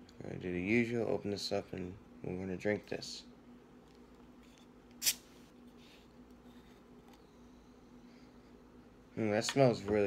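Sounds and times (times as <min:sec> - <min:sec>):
carbonation hiss: 0:04.9 - 0:06.1.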